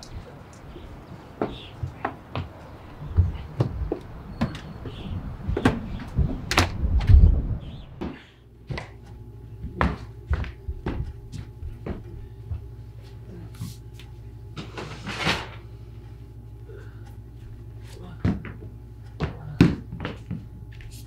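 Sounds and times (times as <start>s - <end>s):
footsteps and shuffling: 0.0s - 14.8s, 16.0s - 21.0s
faint room hum: 0.0s - 21.0s.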